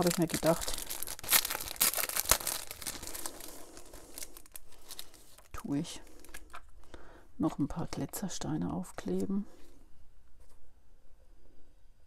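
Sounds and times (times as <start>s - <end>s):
paper sheet crinkling: 0.0s - 6.7s.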